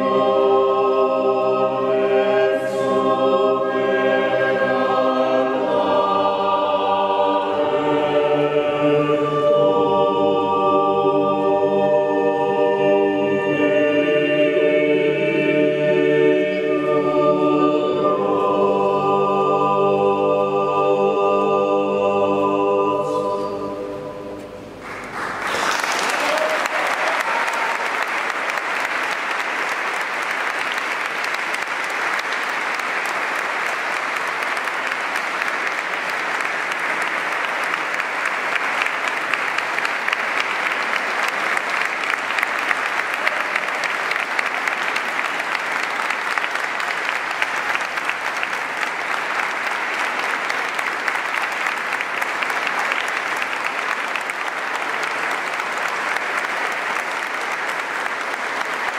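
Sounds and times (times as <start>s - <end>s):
audience applauding: 24.8s - 58.9s.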